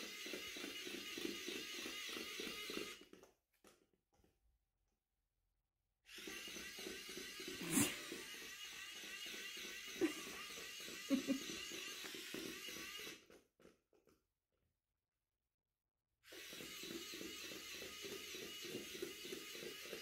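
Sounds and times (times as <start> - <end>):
toy motor whirring: 0.0 - 3.4, 6.0 - 13.8, 16.2 - 20.0.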